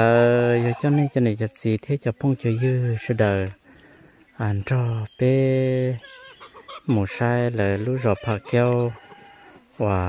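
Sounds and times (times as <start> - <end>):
man talking: 0.0 - 3.6, 4.4 - 6.1, 6.9 - 9.0, 9.8 - 10.0
high bird calls: 2.1 - 9.6.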